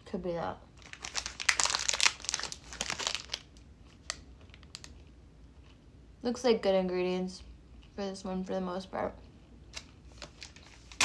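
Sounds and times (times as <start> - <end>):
plastic wrapper crinkling: 0.8 - 5.1, 9.7 - 11.0.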